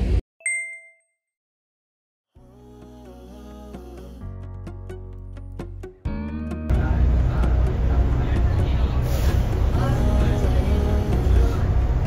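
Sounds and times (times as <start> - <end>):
bright ding chime: 0.4 - 1.2.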